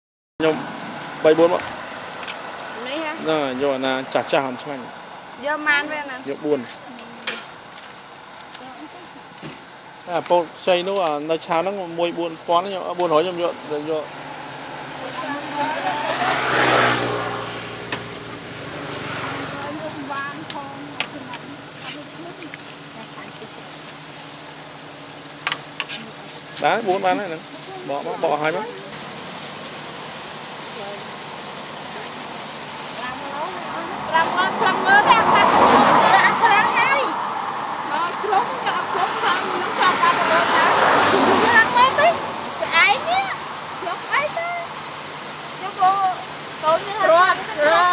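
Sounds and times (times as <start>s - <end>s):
people's voices: 0.4s - 7.6s, 8.4s - 47.9s
outdoor background noise: 0.4s - 47.9s
vehicle passing by: 0.4s - 47.9s.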